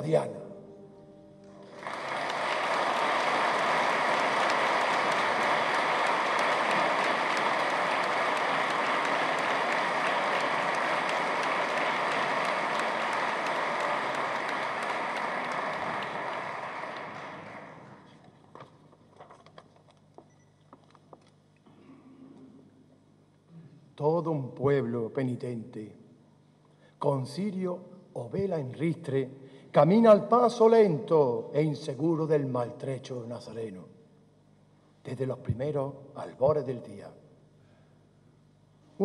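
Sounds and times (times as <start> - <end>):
audience applauding: 1.6 - 18.2.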